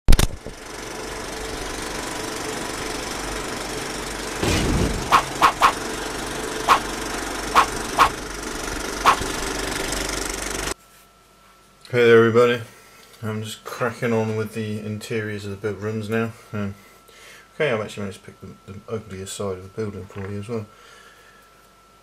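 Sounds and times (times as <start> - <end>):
mechanical rumble: 0.1 - 10.8
loud hit: 4.4 - 5.8.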